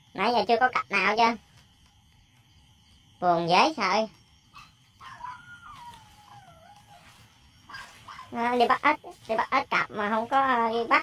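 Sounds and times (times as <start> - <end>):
distant dog whining: 4.5 - 7.1.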